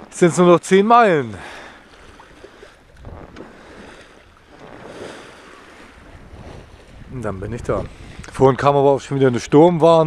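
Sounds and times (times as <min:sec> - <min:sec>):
water rushing along hull: 0:00.0 - 0:10.0
wind rumbling on microphone: 0:02.0 - 0:10.0.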